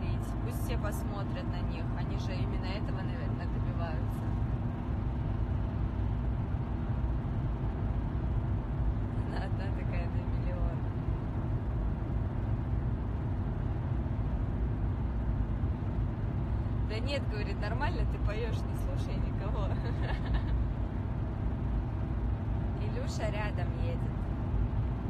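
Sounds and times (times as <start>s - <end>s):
car engine and road drone: 0.0s - 25.0s.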